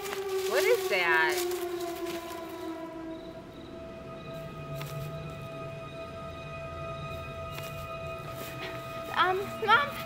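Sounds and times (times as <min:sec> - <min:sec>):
eerie synth chord: 0:00.0 - 0:10.0.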